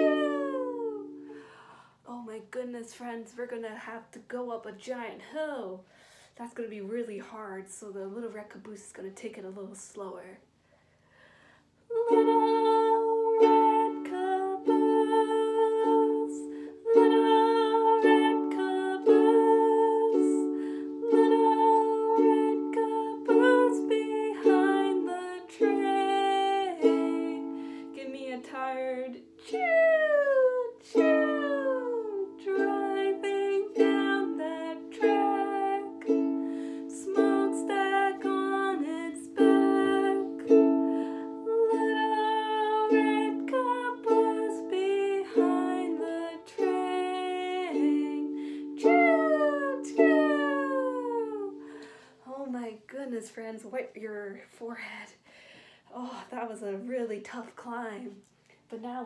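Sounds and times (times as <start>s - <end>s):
ukulele strumming chords: 0.0s - 1.6s, 12.0s - 52.0s
woman singing: 0.0s - 5.6s, 11.9s - 55.2s.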